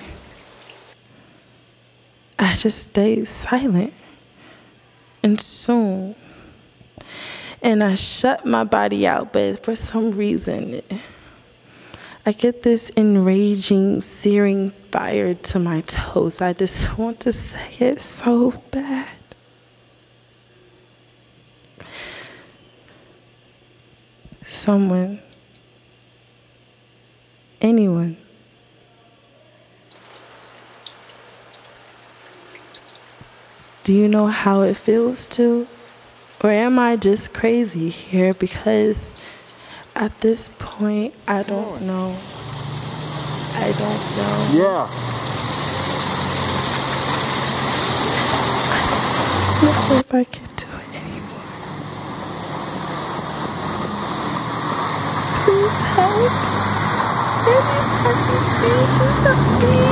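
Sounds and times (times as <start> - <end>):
water pouring down stone wall: 0.0 - 1.0, 29.9 - 37.6, 41.8 - 50.0, 51.4 - 59.9
low steady hum: 0.0 - 59.9
woman breathing: 4.4 - 4.8, 6.2 - 7.6, 10.9 - 12.3, 21.8 - 22.5, 39.2 - 40.0.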